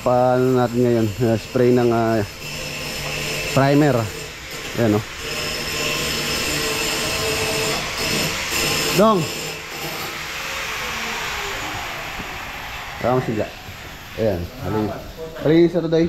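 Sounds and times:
air compressor running: 0.0 - 16.0.

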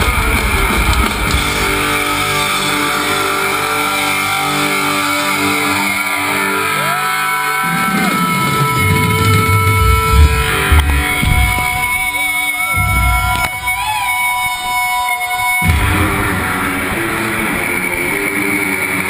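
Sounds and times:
heavy drum and bass hits: 0.0 - 3.0, 8.3 - 14.2, 15.6 - 17.7
distorted electric guitars: 0.0 - 19.0.

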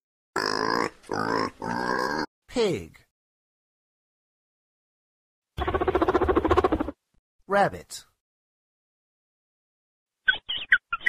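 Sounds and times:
pig grunting: 0.4 - 2.3.

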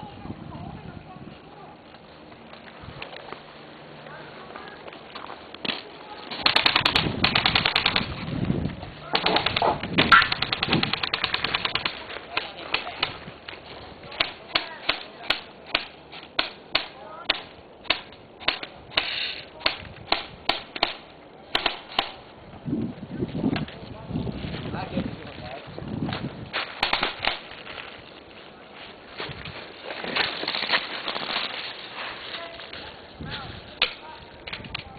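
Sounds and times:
airsoft rifles firing: 5.7 - 8.2, 9.0 - 13.1, 14.2 - 22.2, 26.8 - 27.5.

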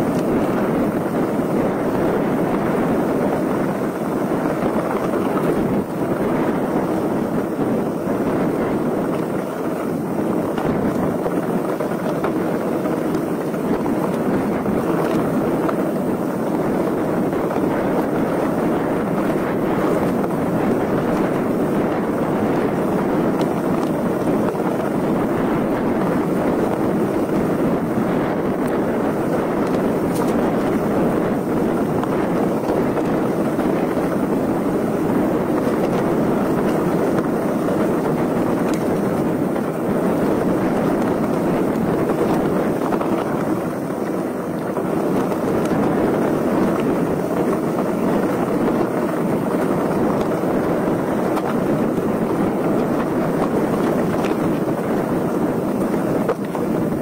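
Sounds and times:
bike tyres rumbling on gravel: 0.0 - 57.0
wind on microphone: 0.0 - 57.0.

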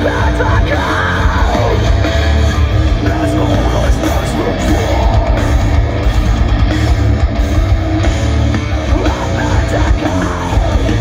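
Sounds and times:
harsh yelled vocal: 0.0 - 2.4, 3.0 - 6.0, 8.8 - 11.0
live metal band playing: 0.0 - 11.0.

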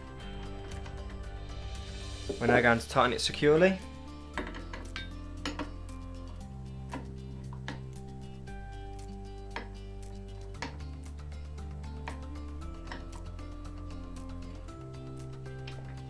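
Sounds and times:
background music with chords: 0.0 - 16.0.

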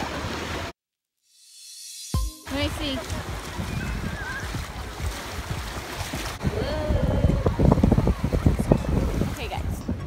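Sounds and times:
shallow surf washing: 2.5 - 10.0
wind buffeting microphone: 2.7 - 10.0.

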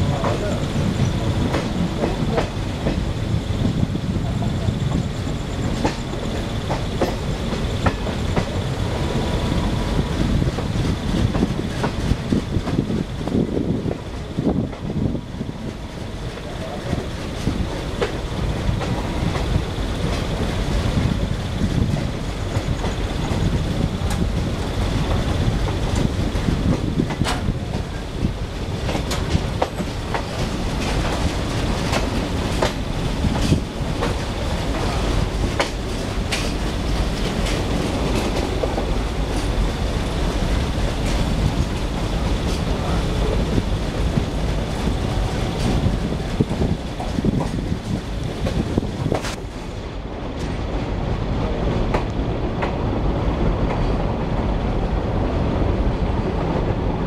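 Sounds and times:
wheels rumbling on track: 0.0 - 57.0.

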